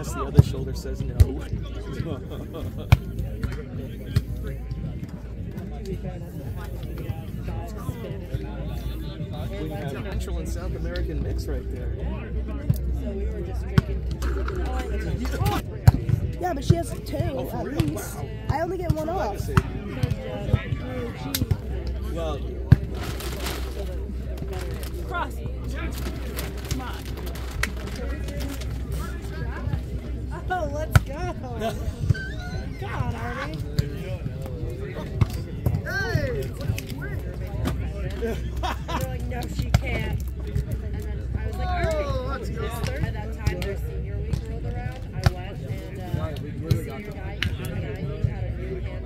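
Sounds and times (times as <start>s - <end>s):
chatter of people: 0.0s - 49.0s
scattered voices: 0.0s - 49.0s.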